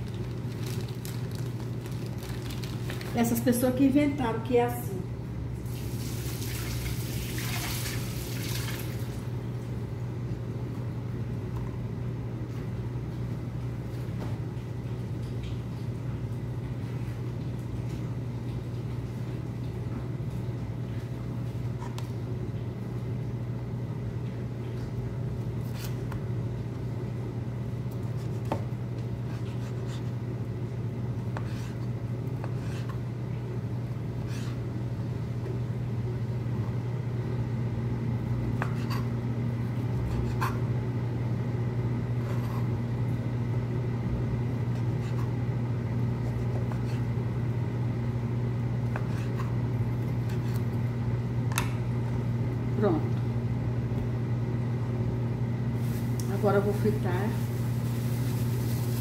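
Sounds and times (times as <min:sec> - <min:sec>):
low machine hum: 0:00.0 - 0:59.0.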